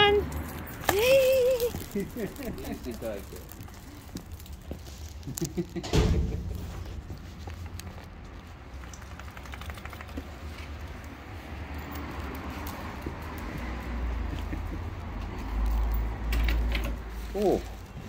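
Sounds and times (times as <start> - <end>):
dog claws pattering on tiles: 0.6 - 5.8, 7.1 - 11.2
low rumble: 5.8 - 8.8.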